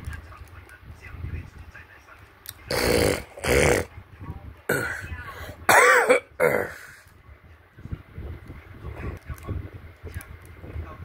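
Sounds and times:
person coughing: 5.7 - 6.9.

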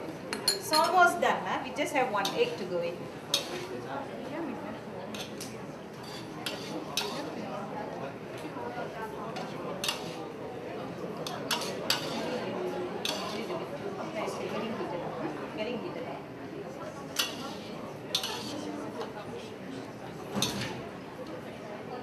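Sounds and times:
metal spatula scraping a wok: 3.3 - 3.7, 6.0 - 7.4, 9.8 - 10.2, 11.5 - 12.4, 13.0 - 13.5, 17.2 - 18.7.

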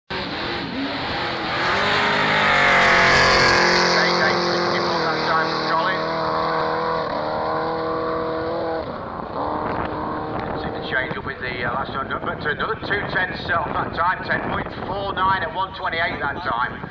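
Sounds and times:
race car accelerating: 0.1 - 14.0.

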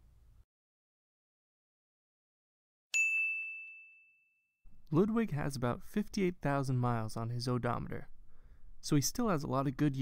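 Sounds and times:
bright bell-like ding: 3.0 - 4.5.

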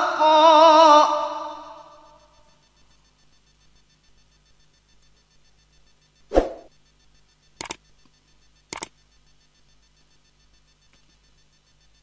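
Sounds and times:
mouse double clicks: 7.6 - 7.8, 8.7 - 9.0.

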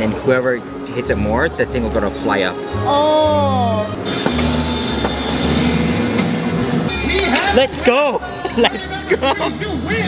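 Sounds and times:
game machine tones: 4.0 - 5.9.

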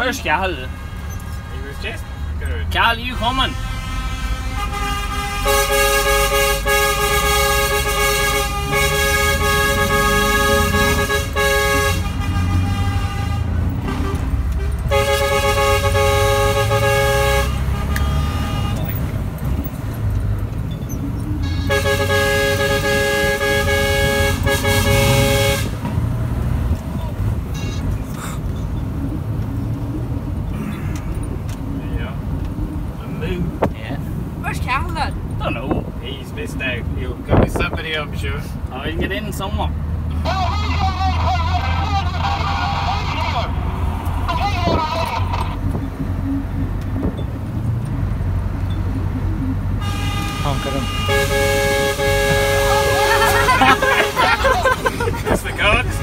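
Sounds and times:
diesel engine running: 0.0 - 35.4, 39.8 - 56.0
truck air horns chord: 3.1 - 19.2, 21.4 - 26.1, 49.7 - 56.0.

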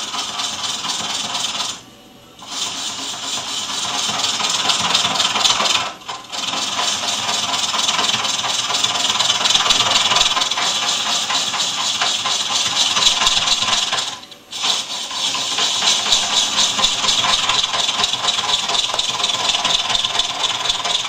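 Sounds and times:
lathe tool cutting wood: 2.4 - 21.0.

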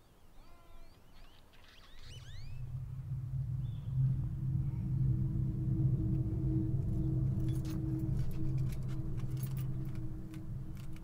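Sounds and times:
high chirps: 1.7 - 4.9
low rumbling drone: 2.0 - 11.0.

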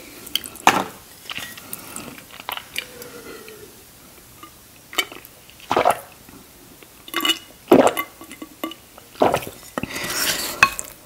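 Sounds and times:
person swallowing: 2.5 - 3.8
wooden spoon scraping ceramic bowl: 9.4 - 10.8.

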